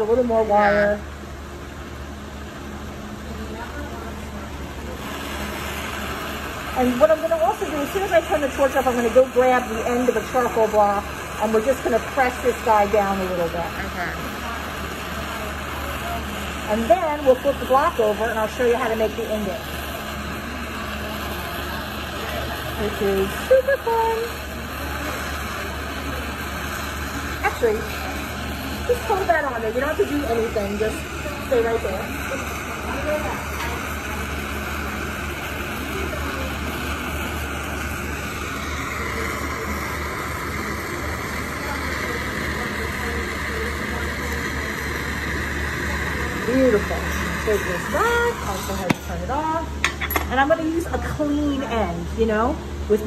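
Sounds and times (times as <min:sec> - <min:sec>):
gas torch flame hissing: 0:00.0 - 0:53.0.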